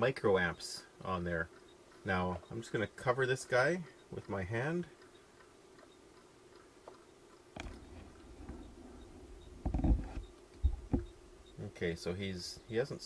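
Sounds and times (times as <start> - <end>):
soft thumps: 9.6 - 11.2.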